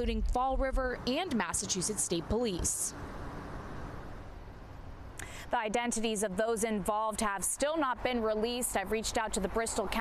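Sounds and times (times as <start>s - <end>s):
street ambience: 0.0s - 10.0s.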